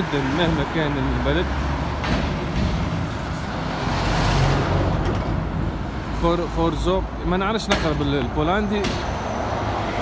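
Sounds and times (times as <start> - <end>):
vehicles driving past: 0.0 - 10.0.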